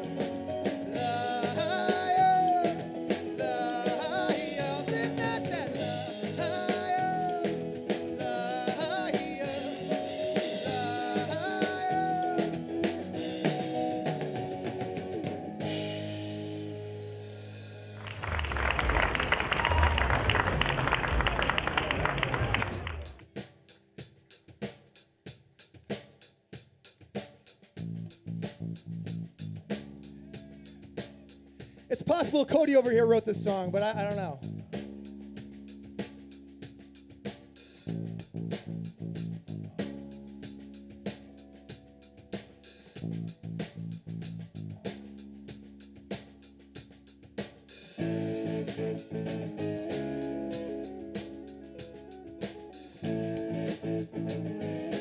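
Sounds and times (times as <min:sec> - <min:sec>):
drum and cymbal crash: 0:00.0 - 0:14.9, 0:30.8 - 0:49.4
low notes: 0:00.0 - 0:23.2, 0:27.8 - 0:47.4, 0:48.0 - 0:55.0
rock band playing: 0:00.0 - 0:24.8, 0:27.7 - 0:55.0.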